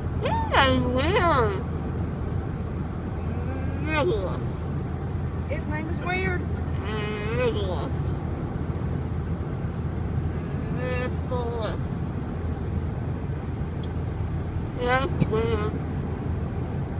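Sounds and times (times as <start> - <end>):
car cabin road and engine rumble: 0.0 - 16.9.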